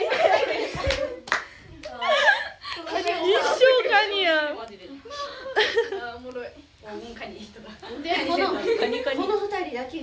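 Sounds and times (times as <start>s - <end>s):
sharp hand claps: 0.8s - 2.0s.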